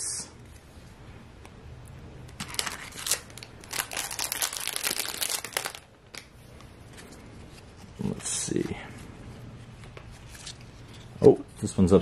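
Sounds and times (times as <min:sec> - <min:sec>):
card pack wrapper tearing: 0:02.4 - 0:06.3.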